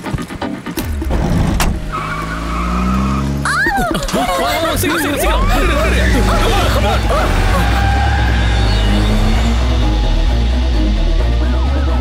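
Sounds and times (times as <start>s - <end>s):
action film background music: 0.0s - 2.3s, 4.6s - 12.0s
car engine revving: 1.0s - 12.0s
tyres squealing: 1.8s - 11.4s.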